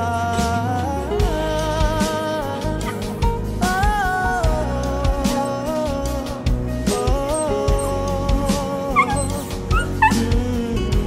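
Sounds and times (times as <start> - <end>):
background music: 0.0 - 11.0
small dog yipping: 7.3 - 8.0, 8.9 - 10.2.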